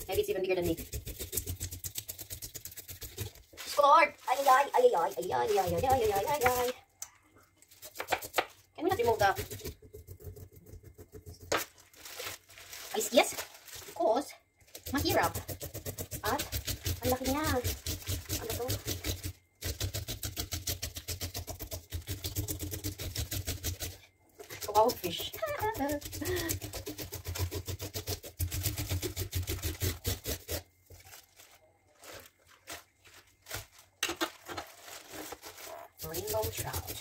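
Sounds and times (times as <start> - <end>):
knife scraping fish scales: 0.6 - 3.8, 14.7 - 31.2
high voice: 3.6 - 6.8.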